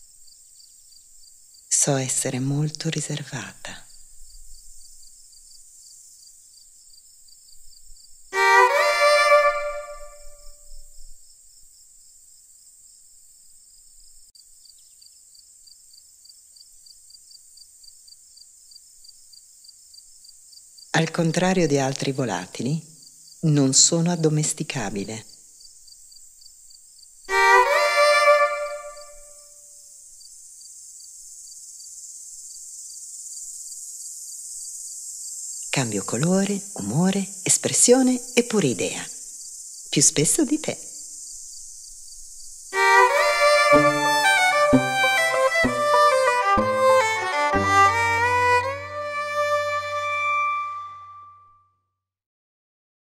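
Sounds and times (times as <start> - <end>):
crickets chirping: 0.0 - 46.4
violin note: 8.4 - 10.6, 27.3 - 29.4, 42.8 - 51.6
thin high hiss: 25.3 - 47.0.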